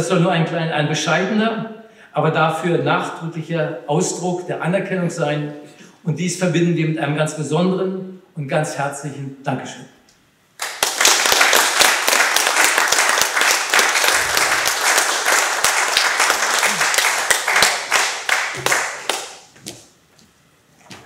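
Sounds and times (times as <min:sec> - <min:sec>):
small audience applauding: 0:10.6 - 0:19.5.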